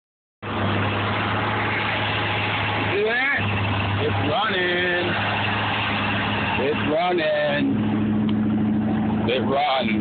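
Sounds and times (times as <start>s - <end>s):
car engine idling: 0.4s - 10.0s.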